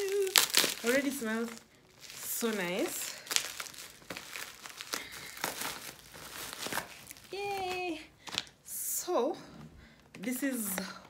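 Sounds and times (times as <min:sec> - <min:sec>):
packaging crinkling and rustling: 0:00.0 - 0:08.6.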